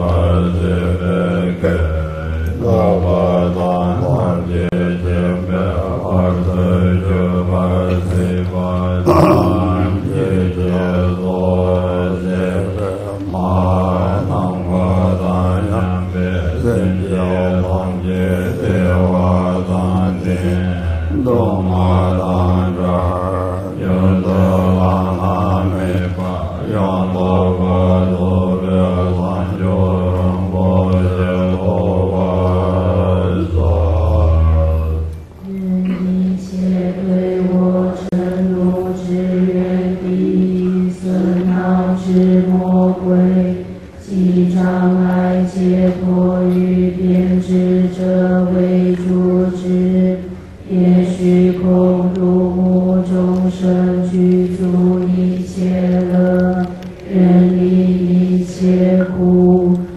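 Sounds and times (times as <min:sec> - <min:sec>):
deep male voice chanting: 0:00.0 - 0:43.4.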